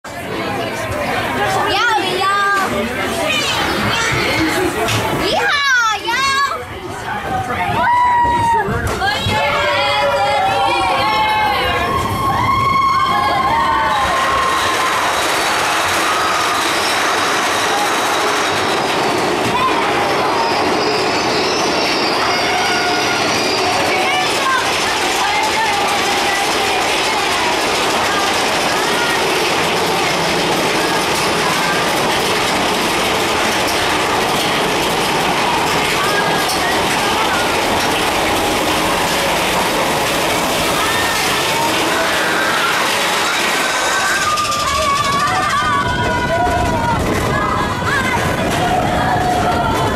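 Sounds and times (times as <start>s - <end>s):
chatter of many people: 0.0s - 49.9s
roller coaster wheels rumbling on rails: 0.0s - 49.9s
faint riders' voices: 0.1s - 49.9s.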